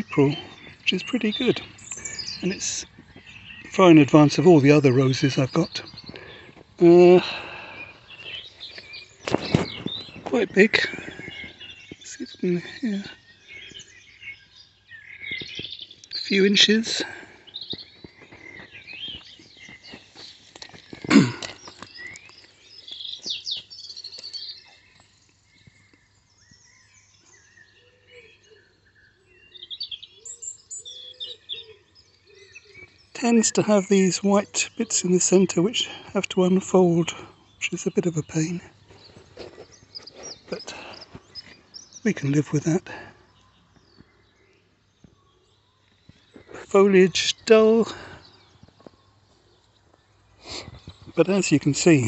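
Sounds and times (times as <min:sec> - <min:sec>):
birds chirping and singing: 0:00.0 - 0:52.0.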